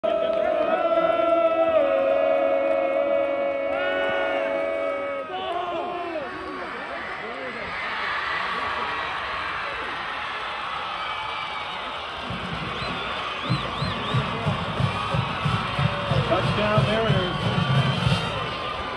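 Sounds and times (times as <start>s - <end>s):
crowd yelling and cheering: 0.0s - 18.9s.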